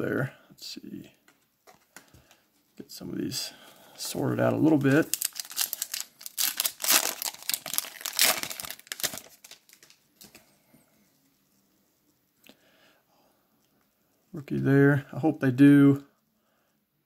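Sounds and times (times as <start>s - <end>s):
foil wrapper crinkling: 4.6s - 10.4s.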